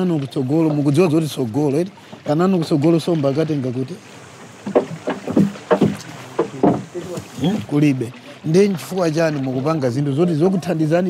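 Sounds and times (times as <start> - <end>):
knocks and splashes against hull: 0.0 - 11.0.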